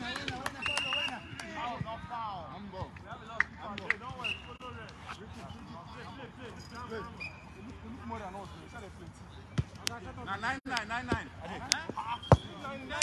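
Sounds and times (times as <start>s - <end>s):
football being kicked: 11.9s - 12.6s.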